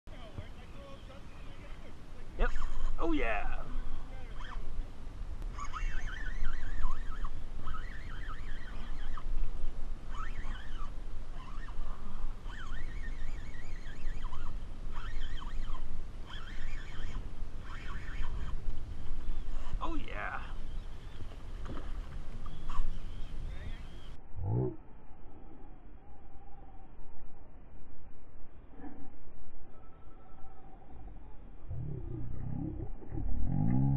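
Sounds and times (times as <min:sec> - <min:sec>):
wind rumble on microphone: 0:00.1 - 0:33.9
fishing reel drag whining: 0:02.4 - 0:04.7, 0:05.5 - 0:09.4, 0:10.0 - 0:19.8, 0:20.4 - 0:21.4, 0:22.0 - 0:24.2.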